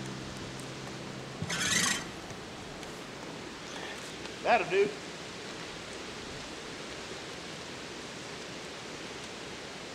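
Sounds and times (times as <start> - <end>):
constant rushing hiss: 0.0 - 9.9.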